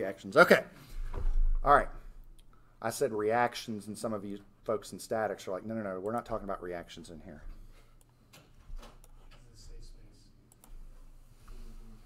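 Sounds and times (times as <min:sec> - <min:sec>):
computer mouse clicks: 0:10.5 - 0:10.8.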